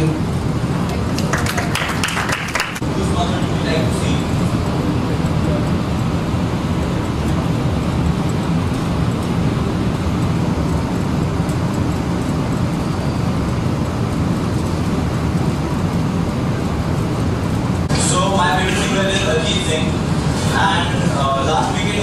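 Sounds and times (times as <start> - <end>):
low rumbling background noise: 0.0 - 22.0.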